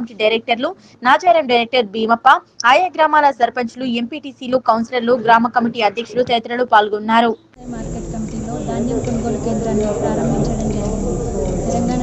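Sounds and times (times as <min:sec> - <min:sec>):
woman speaking: 0:00.0 - 0:12.0
background hiss: 0:07.6 - 0:12.0.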